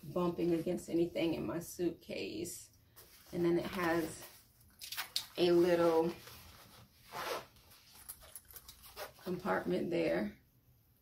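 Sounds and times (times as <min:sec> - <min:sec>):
zipper being pulled: 0:07.0 - 0:09.4.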